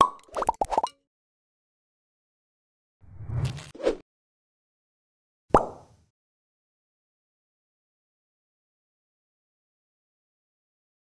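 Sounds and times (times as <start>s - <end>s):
cartoon pop: 5.5s - 6.0s.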